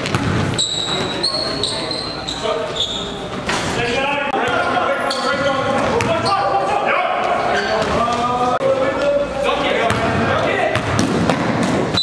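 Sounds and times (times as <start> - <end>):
basketball bouncing on hardwood floor: 0.0 - 0.5
players' voices: 0.0 - 12.0.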